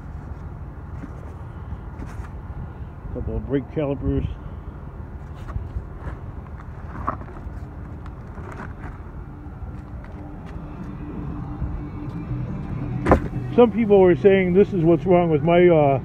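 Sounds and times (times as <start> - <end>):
sharp thud: 13.0 - 13.4.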